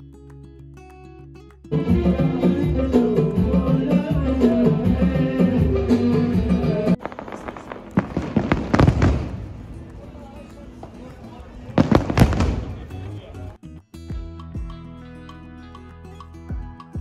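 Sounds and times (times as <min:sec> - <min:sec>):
crowd murmur: 0:01.7 - 0:13.6
live music: 0:01.7 - 0:17.0
fireworks crackling and popping: 0:07.0 - 0:13.6.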